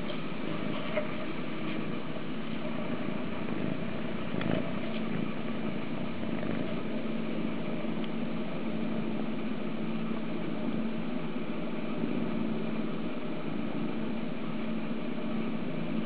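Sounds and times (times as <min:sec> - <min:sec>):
kitten purring: 0:03.2 - 0:07.1.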